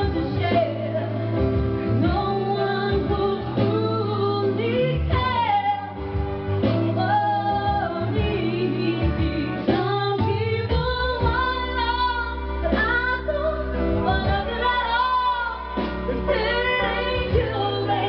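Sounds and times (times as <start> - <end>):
karaoke backing track: 0.0 - 18.0
woman singing into microphone: 0.0 - 18.0.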